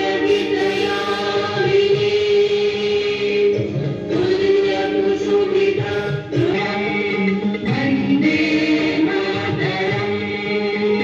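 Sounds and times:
group singing in chorus: 0:00.0 - 0:11.0.

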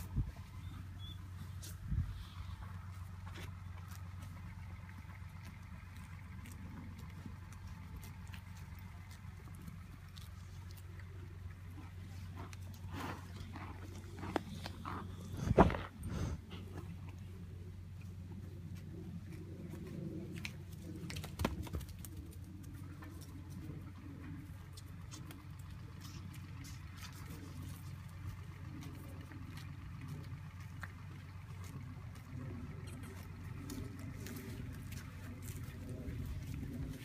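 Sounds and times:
low engine hum: 0:00.0 - 0:37.0
rustles and clicks: 0:00.0 - 0:37.0
horse puffing breath: 0:12.6 - 0:16.9.

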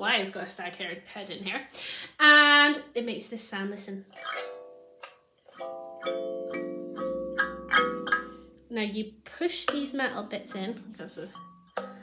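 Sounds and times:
kalimba notes plucked: 0:04.3 - 0:08.7.

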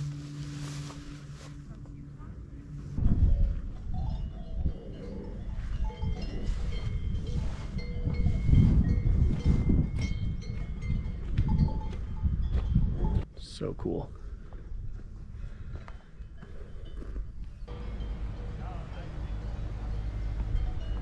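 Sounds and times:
wind buffeting microphone: 0:02.8 - 0:13.3
cowbells clanking: 0:03.8 - 0:13.2, 0:16.4 - 0:21.0.

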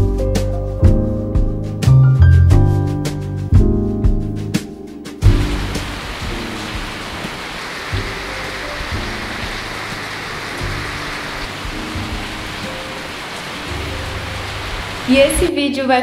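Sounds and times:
soft background music: 0:00.0 - 0:16.0
steady rain falling: 0:05.2 - 0:15.5.

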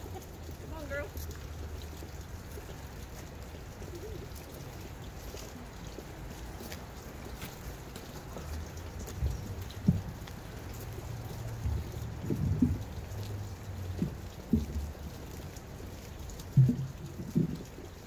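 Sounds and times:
wind buffeting microphone: 0:08.5 - 0:15.1.

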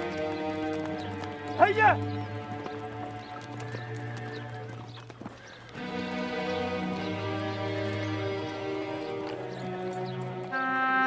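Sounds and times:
film score music: 0:00.0 - 0:11.0
hooves clip-clopping: 0:00.0 - 0:11.0.

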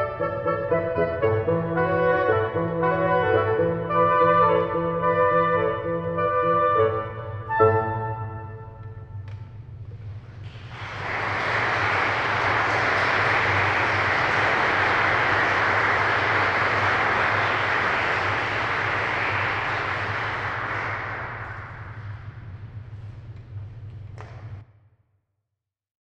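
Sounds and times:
steady low hum: 0:07.2 - 0:24.7
audience applauding: 0:10.1 - 0:22.6.

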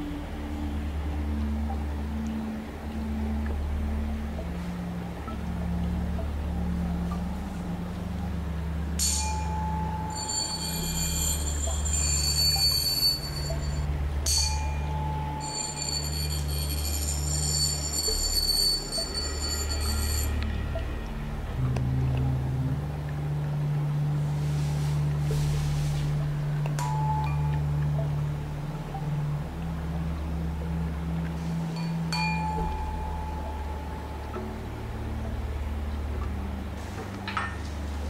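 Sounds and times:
soft background music drone: 0:00.0 - 0:38.0
tuning fork ringing: 0:09.0 - 0:21.7, 0:26.8 - 0:28.2, 0:31.7 - 0:34.4.

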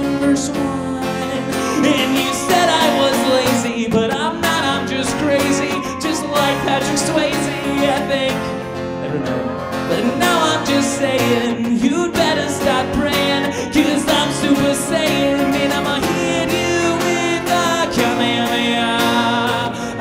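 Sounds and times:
acoustic guitar strummed: 0:00.0 - 0:20.0
electric guitar: 0:00.0 - 0:20.0
person singing: 0:00.0 - 0:20.0.

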